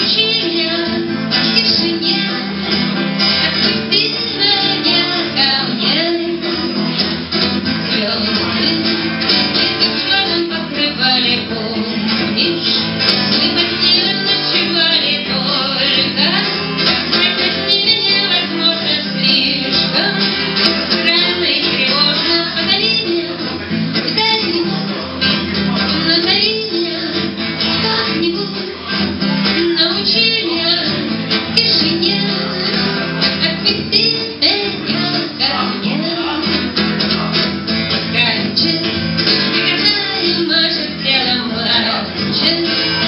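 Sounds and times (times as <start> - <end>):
woman singing: 0.0 - 36.7, 38.0 - 43.0
strummed electric guitar: 0.0 - 43.0.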